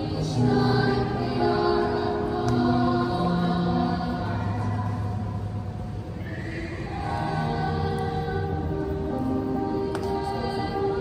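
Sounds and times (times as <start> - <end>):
girls' choir singing softly: 0.0 - 11.0.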